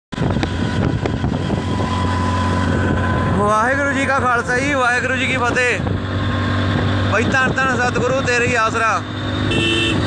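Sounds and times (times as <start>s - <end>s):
wind buffeting microphone: 0.1s - 8.6s
engine low rumble: 0.1s - 10.0s.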